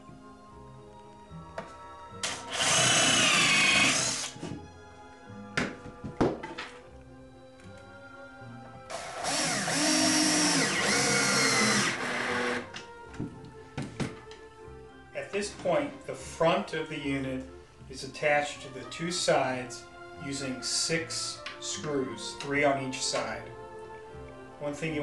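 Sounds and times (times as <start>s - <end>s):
background music: 0.0s - 25.0s
cordless drill whining: 2.2s - 4.4s, 8.9s - 12.7s.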